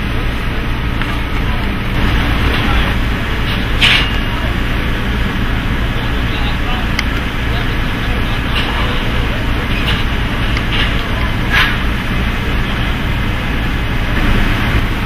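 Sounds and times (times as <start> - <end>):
indistinct crew voices: 0.0 - 15.0
low engine rumble: 0.0 - 15.0
metal truss clanks: 1.9 - 5.0, 7.0 - 12.1.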